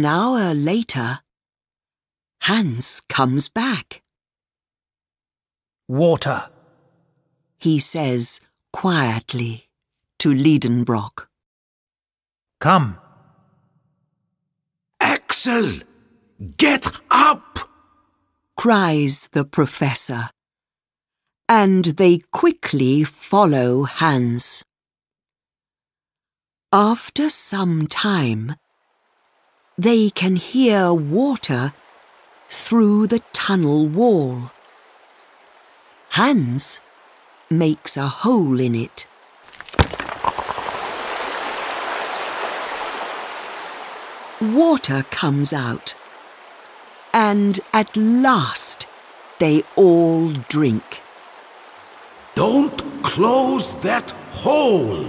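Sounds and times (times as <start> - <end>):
water gushing: 39.1 - 55.0
pickaxe striking rock: 39.5 - 40.8
spoken word tail: 52.4 - 55.0.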